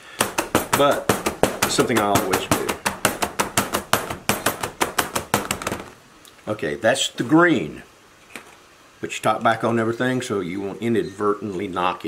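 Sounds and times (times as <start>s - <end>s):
plastic mold knocking on table: 0.0s - 6.0s.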